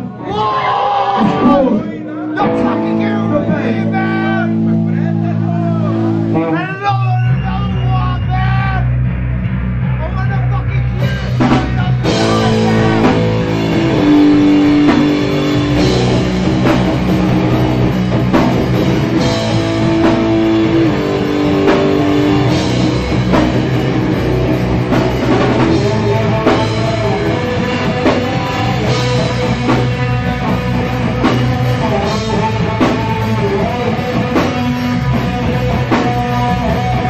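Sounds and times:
drum kit: 0:00.0 - 0:37.0
punk band playing live: 0:00.0 - 0:37.0
distorted electric guitars: 0:01.0 - 0:37.0.

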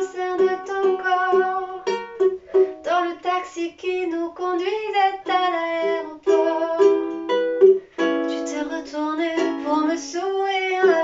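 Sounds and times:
woman singing: 0:00.0 - 0:07.3, 0:08.1 - 0:11.0
ukulele chords: 0:00.0 - 0:11.0.

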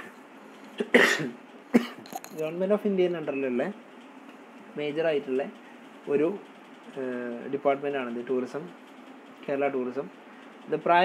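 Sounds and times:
person coughing: 0:00.8 - 0:02.0.

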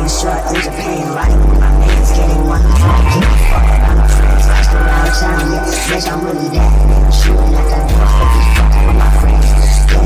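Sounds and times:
rap beat with deep bass: 0:00.0 - 0:10.0.

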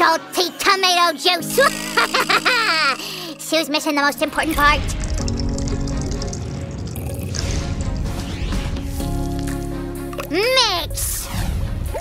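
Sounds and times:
background music: 0:00.0 - 0:12.0
juice pouring into a glass: 0:04.2 - 0:08.2.

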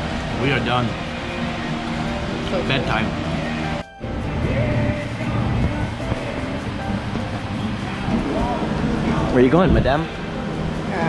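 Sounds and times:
faint background music: 0:00.0 - 0:11.0
wind buffeting microphone: 0:04.2 - 0:11.0
voices: 0:04.4 - 0:11.0.

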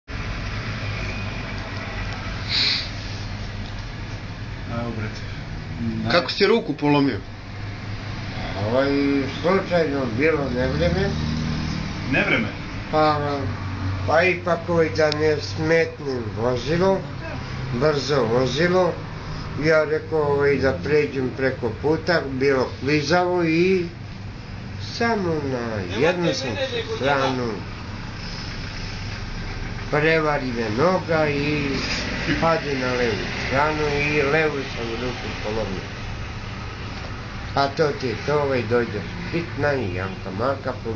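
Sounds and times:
low machine hum: 0:00.1 - 0:40.9
street traffic rumble: 0:00.1 - 0:40.9.

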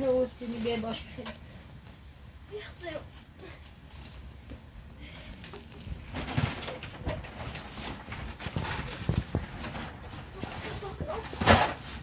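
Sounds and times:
rustling and crinkling: 0:00.0 - 0:12.0.

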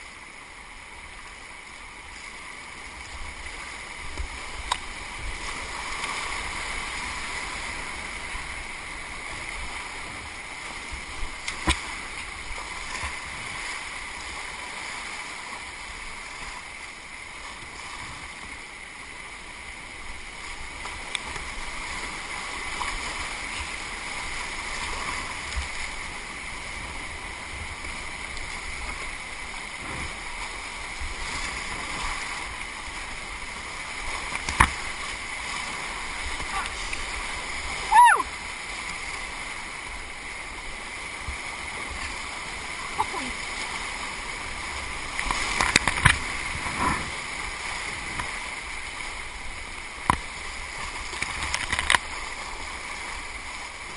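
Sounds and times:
river rapids rushing: 0:00.0 - 0:53.9.

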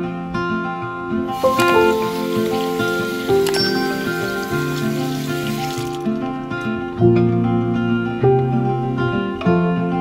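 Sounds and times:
acoustic guitar music: 0:00.0 - 0:10.0
tap water running into basin: 0:01.3 - 0:06.2.

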